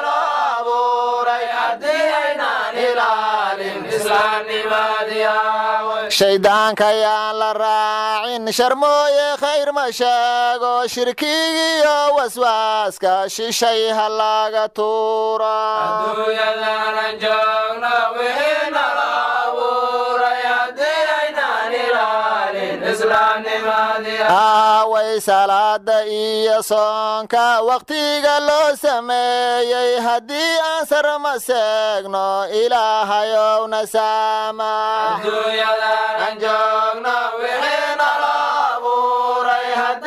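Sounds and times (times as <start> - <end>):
person chanting religious song: 0.0 - 40.0.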